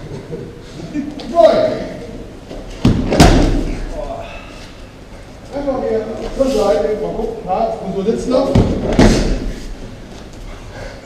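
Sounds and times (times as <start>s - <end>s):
body hitting mats: 2.5s - 3.9s, 8.4s - 9.6s.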